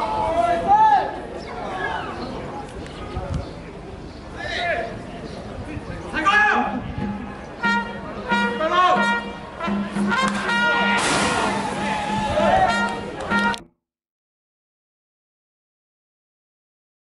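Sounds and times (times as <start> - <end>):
fans chanting and shouting: 6.1 - 13.6
steady drum beat: 7.0 - 12.9
trumpets playing: 7.0 - 13.7.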